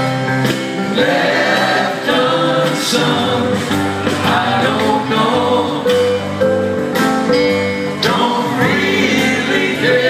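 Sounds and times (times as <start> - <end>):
live rock band playing: 0.0 - 10.0
voices singing together: 0.8 - 6.5, 7.9 - 10.0.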